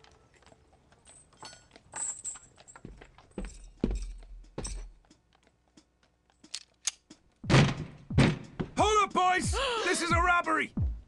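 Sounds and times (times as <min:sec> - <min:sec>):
heavy thuds: 0:07.4 - 0:09.0.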